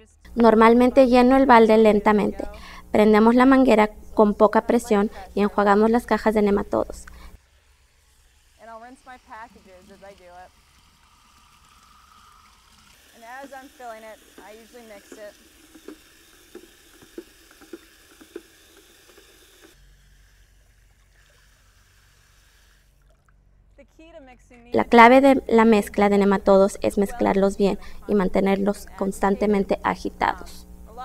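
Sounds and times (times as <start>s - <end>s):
person speaking: 0.0s - 7.4s, 23.8s - 31.0s
hose water hissing into bucket: 2.4s - 23.4s.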